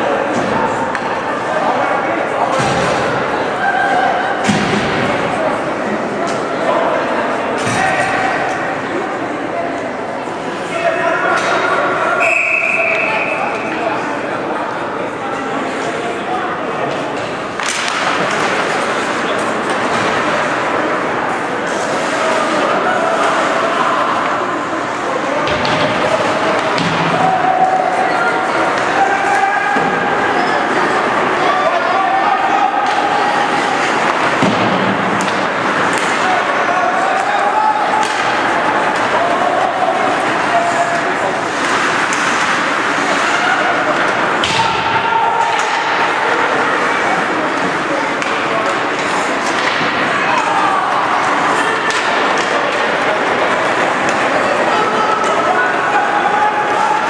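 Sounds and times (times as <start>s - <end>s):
hockey sticks and puck knocking: 17.6s - 20.6s, 33.8s - 36.6s, 37.2s - 39.2s, 40.0s - 46.2s, 47.5s - 54.3s.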